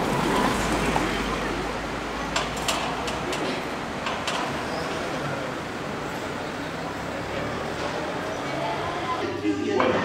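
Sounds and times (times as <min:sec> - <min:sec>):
city street noise: 0:00.0 - 0:10.0
traffic rumble: 0:00.0 - 0:10.0.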